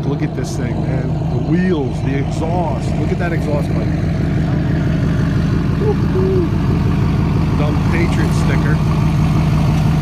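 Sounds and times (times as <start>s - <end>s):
pickup engine idling: 0.0s - 10.0s.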